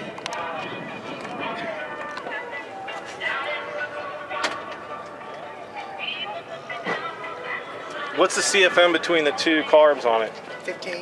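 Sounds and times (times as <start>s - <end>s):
faint music: 0.0s - 11.0s
indistinct background voices: 0.0s - 11.0s.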